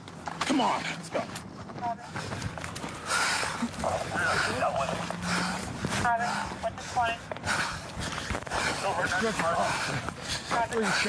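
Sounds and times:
men talking indistinctly: 0.4 - 2.3, 3.2 - 11.0.

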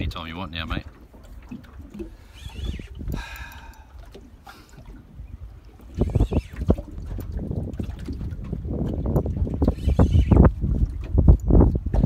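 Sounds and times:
water slapping boat hull: 0.0 - 12.0
wind buffeting microphone: 0.0 - 12.0.

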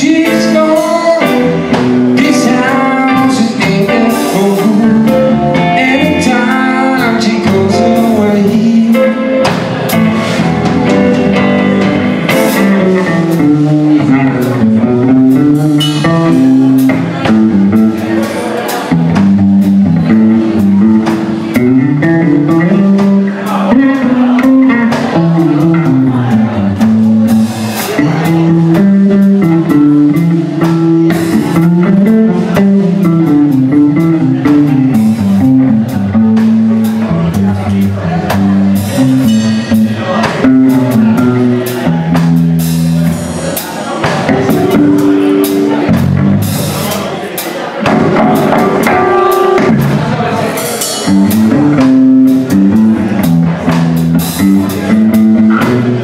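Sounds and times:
bass line: 0.0 - 56.0
drum kit: 0.0 - 56.0
electric guitar: 0.0 - 56.0.

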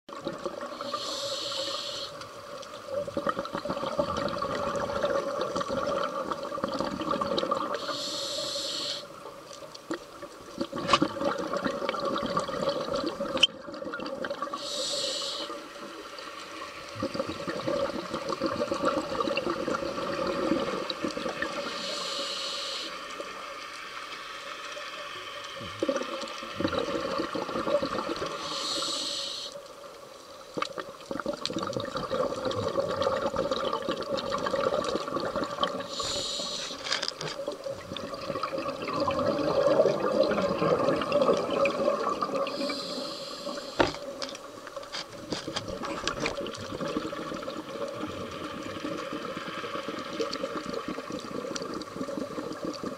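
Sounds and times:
regulator inhalation hiss: 0.7 - 2.4, 7.8 - 9.2, 14.5 - 15.8, 21.5 - 23.5, 28.3 - 29.7, 35.8 - 37.0, 42.5 - 44.1
exhaled bubbles rushing: 3.0 - 7.8, 10.6 - 14.6, 16.9 - 21.7, 25.8 - 28.4, 31.0 - 36.0, 37.5 - 42.8, 45.7 - 52.9.

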